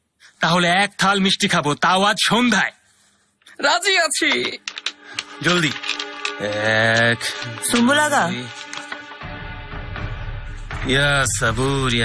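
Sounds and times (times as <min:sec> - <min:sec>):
game pieces clicking on board: 0:04.3 - 0:09.0.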